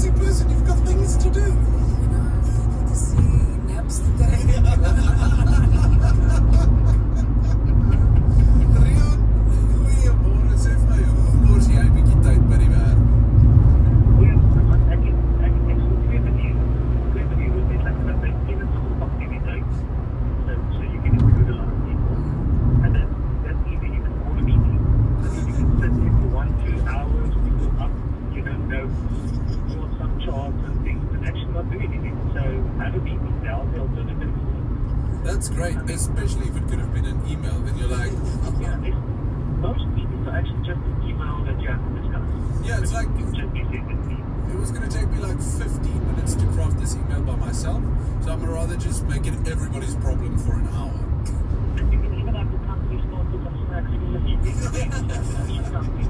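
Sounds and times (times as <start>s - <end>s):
car road and engine noise: 0.0s - 56.0s
faint radio voice: 0.0s - 56.0s.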